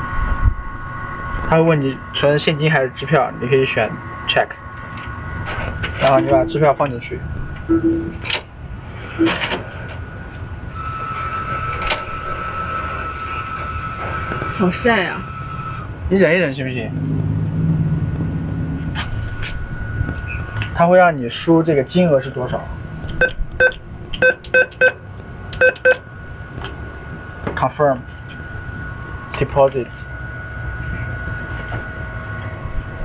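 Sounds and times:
machine mechanism whining: 0.4s - 16.1s
keypad beeps: 7.7s - 8.2s, 9.2s - 9.4s, 23.2s - 25.0s, 25.6s - 26.0s.

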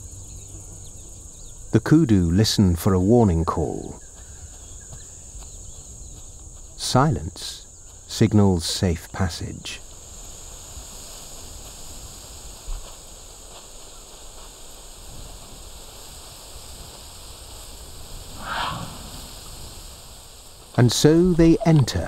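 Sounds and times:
steady soft hiss: 0.0s - 22.0s.

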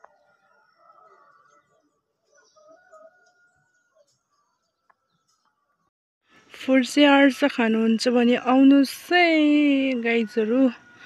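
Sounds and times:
faint birds chirping: 0.0s - 7.7s.

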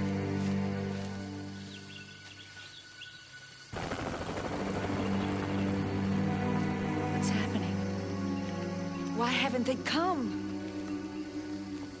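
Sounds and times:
helicopter rotor chop: 3.8s - 6.6s
dramatic orchestral score: 4.0s - 12.0s.

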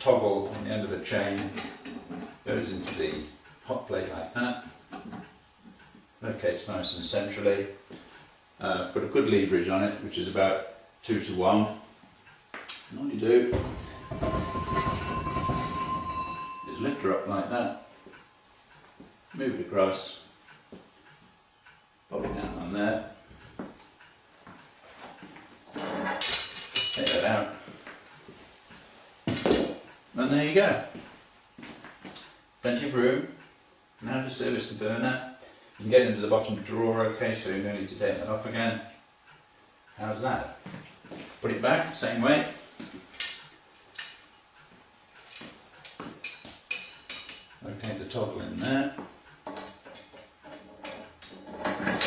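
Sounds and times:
metallic ringing tone: 13.4s - 18.1s
metal lever and chain clinking: 13.6s - 17.0s
metal clicks and clinks: 45.1s - 48.1s.

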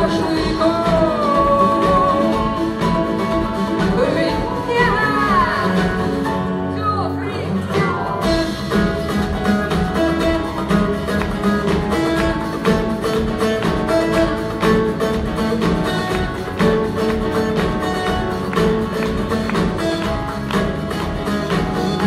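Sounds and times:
acoustic guitar: 0.0s - 22.0s
live band playing: 0.0s - 22.0s.

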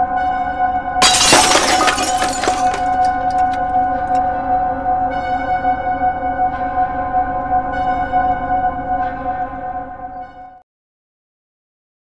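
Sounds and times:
glass shattering: 1.0s - 3.6s.

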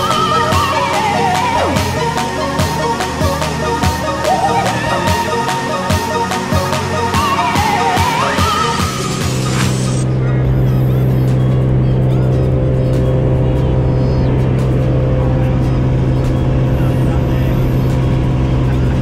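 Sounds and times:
background music: 0.0s - 19.0s
light aircraft engine drone: 8.6s - 19.0s.

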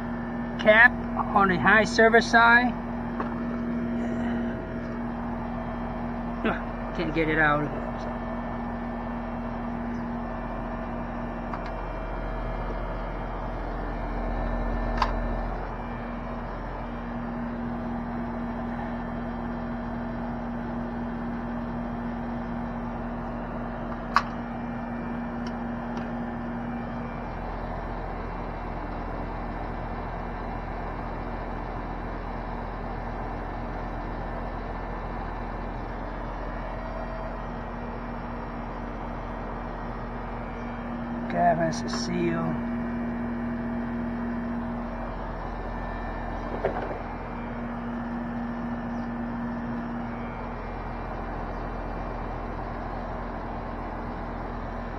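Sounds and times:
air conditioner unit humming: 0.0s - 54.9s.

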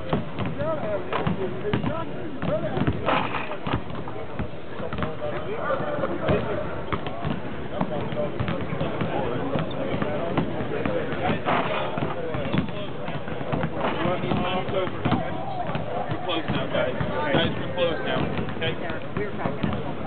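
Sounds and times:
basketballs bouncing on hardwood: 0.0s - 20.0s
chatter of many voices: 0.0s - 20.0s.

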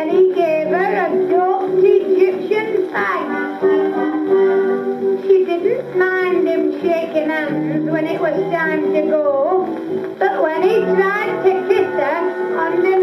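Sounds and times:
woman singing on old record: 0.0s - 13.0s.

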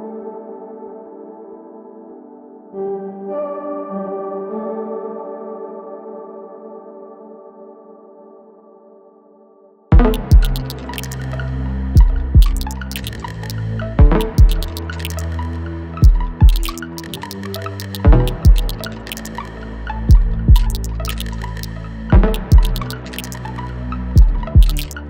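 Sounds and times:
ambient electronic music: 9.9s - 25.0s
short sharp clicks: 10.1s - 11.4s, 12.4s - 13.6s, 14.2s - 15.6s, 16.4s - 19.5s, 20.6s - 23.5s, 24.6s - 25.0s.

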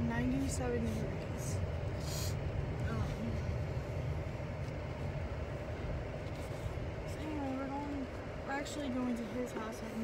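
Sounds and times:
car air conditioning blowing: 0.0s - 10.0s
car road rumble: 0.0s - 10.0s.

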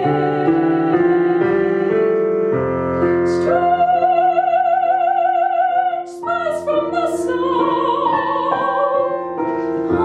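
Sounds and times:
piano accompaniment: 0.0s - 10.0s
woman singing operatically: 3.4s - 9.2s.

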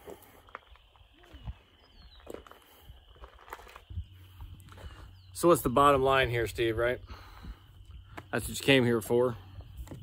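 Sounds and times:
footsteps crunching on gravel: 0.0s - 6.4s, 8.0s - 10.0s.

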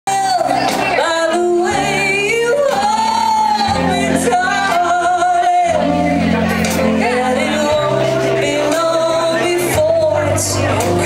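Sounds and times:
electric bass: 0.1s - 11.0s
electric guitar: 0.1s - 11.0s
woman singing: 0.1s - 11.0s.

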